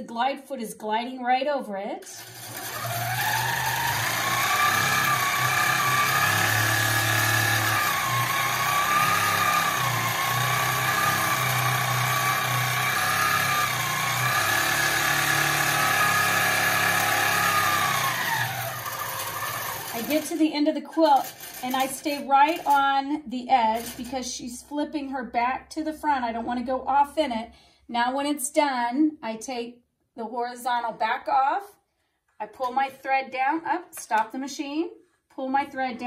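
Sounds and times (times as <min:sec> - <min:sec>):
quilting machine motor whine: 0:02.2 - 0:20.4.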